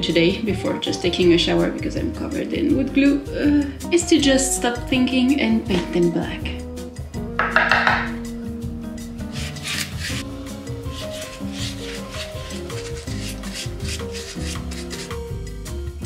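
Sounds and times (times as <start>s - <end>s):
background music with sustained notes: 0.0s - 16.0s
paintbrush scrubbing on pumpkin: 9.3s - 15.2s.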